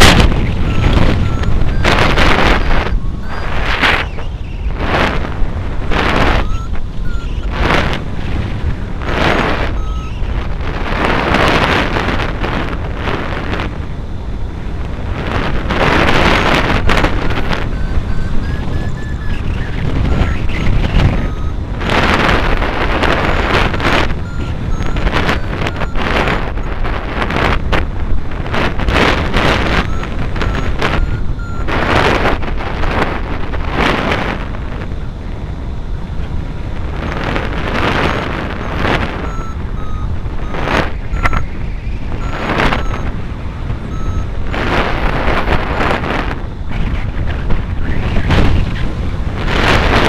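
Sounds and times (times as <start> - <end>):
faint short beeps: 0.0 - 5.2, 6.0 - 8.0, 9.0 - 10.4, 16.1 - 26.8, 29.5 - 32.2, 37.0 - 45.5
wind buffeting microphone: 0.0 - 50.0.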